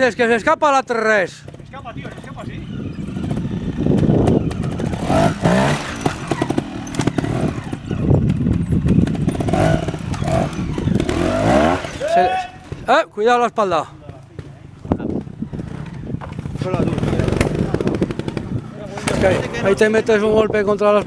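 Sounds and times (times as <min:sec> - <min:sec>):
motorcycle engine revving: 0:01.2 - 0:13.0, 0:13.8 - 0:21.0.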